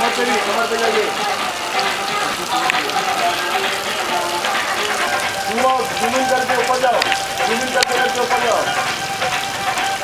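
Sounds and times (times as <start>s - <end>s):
voices: 0.0s - 9.4s
music playing: 0.0s - 10.0s.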